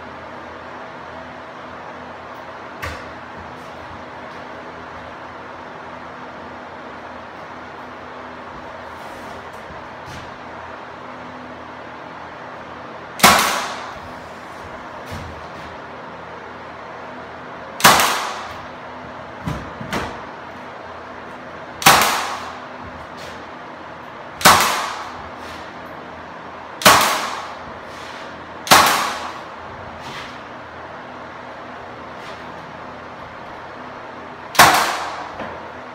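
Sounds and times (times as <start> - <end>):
nail gun firing into wood: 13.2 - 14.0, 17.8 - 18.7, 21.8 - 22.6, 24.4 - 25.2, 26.8 - 27.6, 28.6 - 29.5, 34.5 - 35.5.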